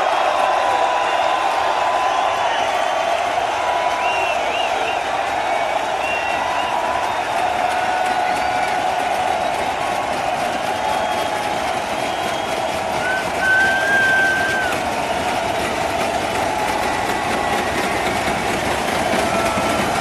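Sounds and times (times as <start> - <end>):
crowd cheering and applauding: 0.0 - 20.0
shrill whistles: 0.8 - 19.9.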